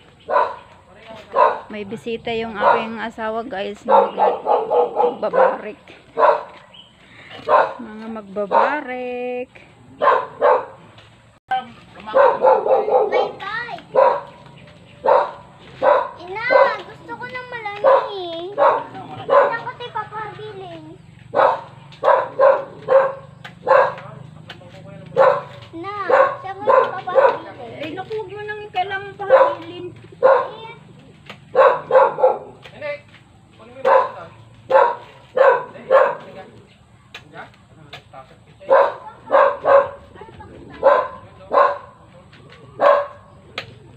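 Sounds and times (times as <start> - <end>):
dog barking: 0.2 - 0.7, 1.3 - 1.7, 2.5 - 3.0, 3.8 - 6.7, 7.3 - 7.8, 8.5 - 8.8, 10.0 - 10.8, 12.1 - 17.0, 17.8 - 19.8, 21.3 - 24.3, 25.0 - 27.6, 29.1 - 30.7, 31.5 - 32.7, 33.8 - 36.6, 38.6 - 42.1, 42.7 - 43.4.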